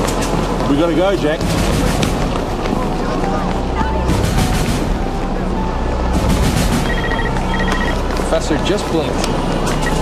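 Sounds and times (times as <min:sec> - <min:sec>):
murmur of voices: 0:00.2 - 0:06.9
tense background music: 0:03.4 - 0:08.2.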